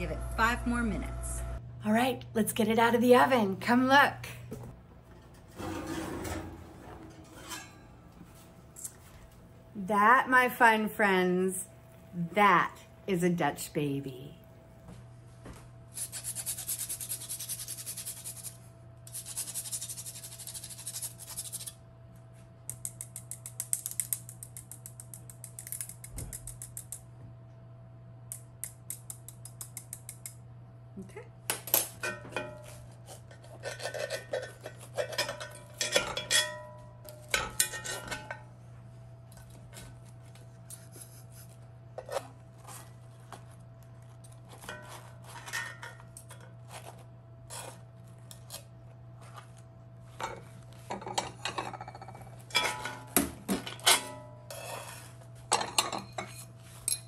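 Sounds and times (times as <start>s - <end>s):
metal utensils scraping a skillet: 5.3s - 7.9s, 53.8s - 57.0s.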